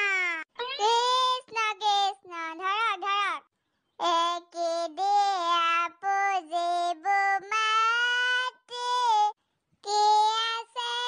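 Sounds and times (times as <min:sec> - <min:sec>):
cartoon-style woman singing: 0:00.6 - 0:02.5, 0:04.0 - 0:11.0.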